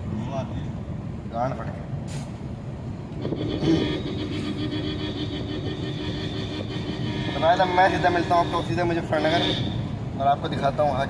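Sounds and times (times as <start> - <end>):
car horn blast: 3.2 - 9.9.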